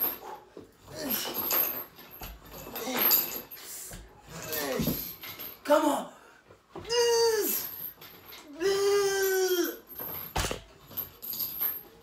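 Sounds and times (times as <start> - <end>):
man's strained cries: 6.8 - 7.8, 8.5 - 10.0.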